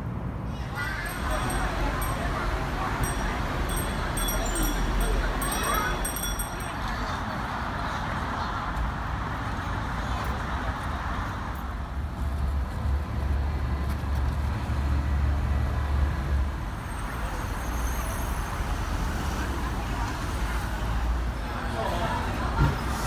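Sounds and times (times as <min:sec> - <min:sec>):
cars passing on road: 0:00.0 - 0:23.0.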